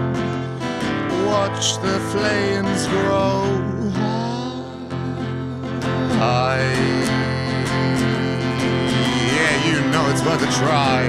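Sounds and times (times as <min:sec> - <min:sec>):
acoustic guitar strumming: 0:00.0 - 0:11.0
man singing a held note: 0:01.0 - 0:04.9, 0:06.0 - 0:11.0.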